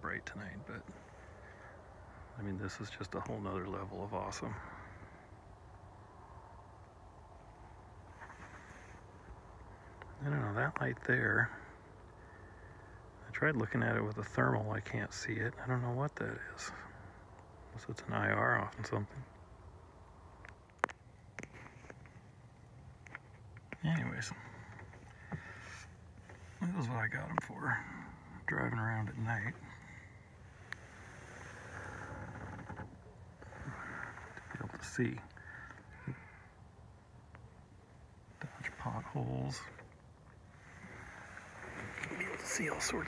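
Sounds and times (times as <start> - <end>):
low steady rumble: 0.0 - 43.0.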